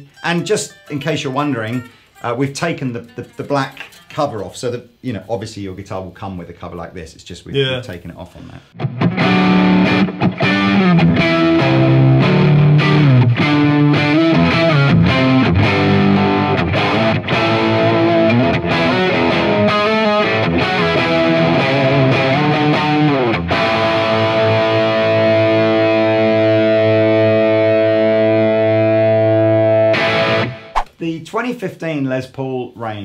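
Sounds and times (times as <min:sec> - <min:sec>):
distorted electric guitar riffing: 0:08.7 - 0:30.7
guitar chord ringing: 0:08.8 - 0:30.6.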